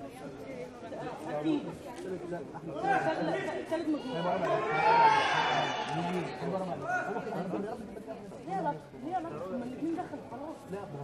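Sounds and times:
voices chattering in a hall: 0:00.0 - 0:11.0.

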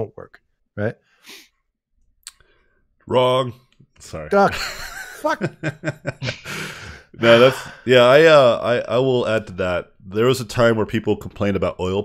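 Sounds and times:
soft breath: 0:06.3 - 0:07.9.

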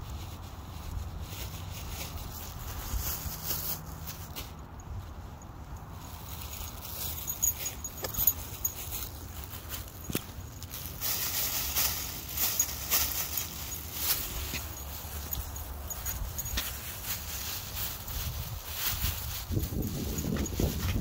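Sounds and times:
plastic bag crinkling: 0:00.0 - 0:21.0.

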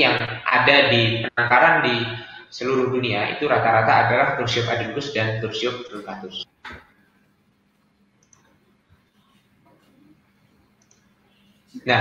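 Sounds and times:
man speaking: 0:00.0 - 0:06.5, 0:11.8 - 0:12.0.

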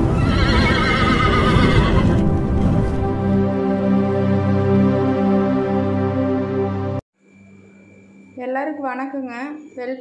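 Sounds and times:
horse whinnying: 0:00.1 - 0:02.2.

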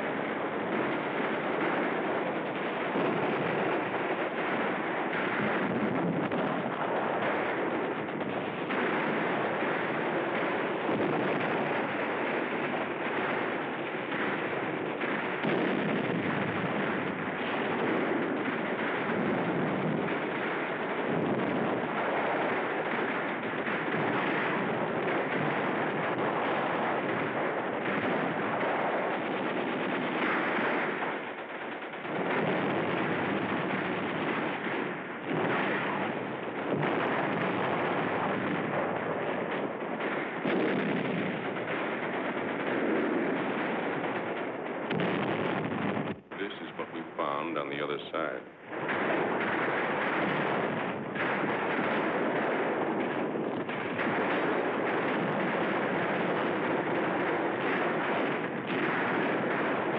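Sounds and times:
machine-gun and rifle fire: 0:00.0 - 0:59.9.

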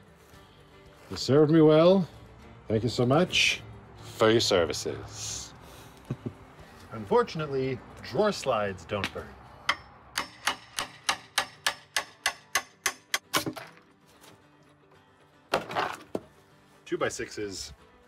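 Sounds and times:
hammer tapping on wood and metal: 0:09.0 - 0:13.7.

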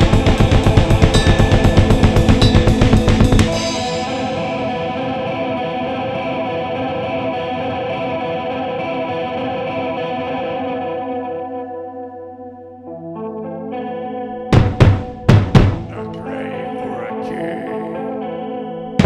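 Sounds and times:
distorted guitar chord ringing: 0:00.0 - 0:19.0
loud hits: 0:14.5 - 0:16.0.

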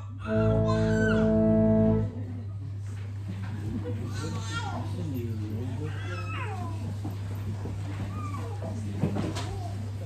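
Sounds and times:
young child crying: 0:00.0 - 0:01.4
low electrical hum: 0:00.0 - 0:10.0
murmur of congregation: 0:00.0 - 0:10.0.

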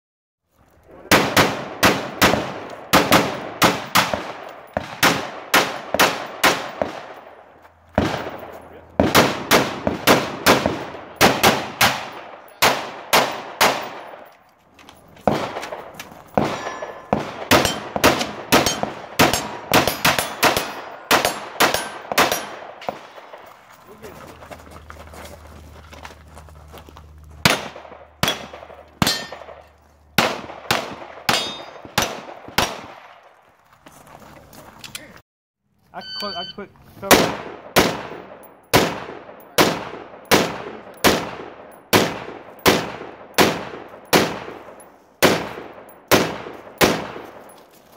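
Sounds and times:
rapid rifle gunshots: 0:01.1 - 0:07.3, 0:08.0 - 0:14.2, 0:15.2 - 0:23.5, 0:30.2 - 0:33.2, 0:37.1 - 0:47.4.

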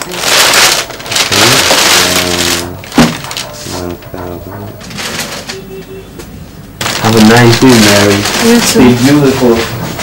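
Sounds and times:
plastic bag rustling: 0:00.0 - 0:04.1, 0:04.8 - 0:05.6, 0:06.8 - 0:10.0.

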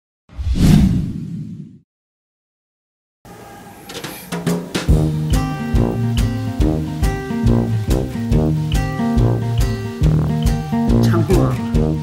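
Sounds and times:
whoosh with heavy low end: 0:00.3 - 0:01.8.

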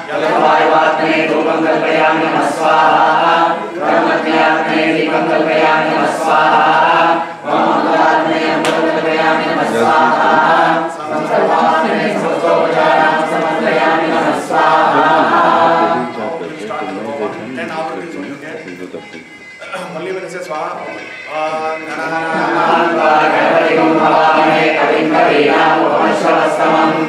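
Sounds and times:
group of voices chanting in unison: 0:00.0 - 0:16.4, 0:22.0 - 0:27.0.

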